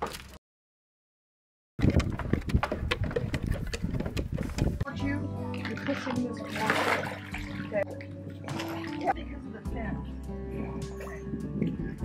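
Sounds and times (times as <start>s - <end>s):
water splashing around paddle board: 5.6s - 9.2s.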